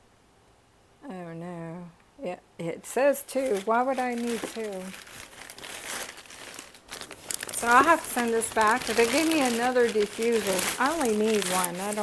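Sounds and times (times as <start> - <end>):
plastic mailer bag crinkling: 3.0 - 12.0.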